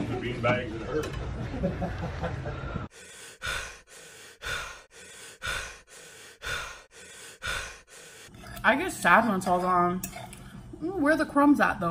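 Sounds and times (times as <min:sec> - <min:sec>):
person breathing heavily: 0:02.6 - 0:08.3.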